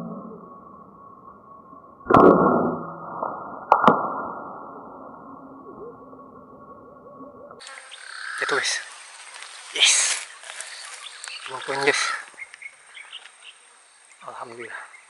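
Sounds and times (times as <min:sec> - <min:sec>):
deep muffled slowed audio: 0:00.0 - 0:07.6
sharp loud hits: 0:02.0 - 0:04.8.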